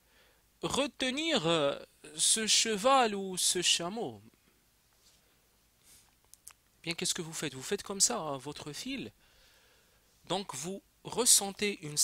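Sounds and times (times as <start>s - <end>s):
soft hiss: 0.0s - 12.0s.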